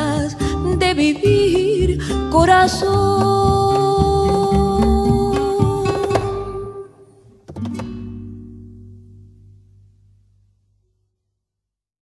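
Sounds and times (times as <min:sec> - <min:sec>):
acoustic guitar plucking and strummed chord: 0:00.0 - 0:10.8.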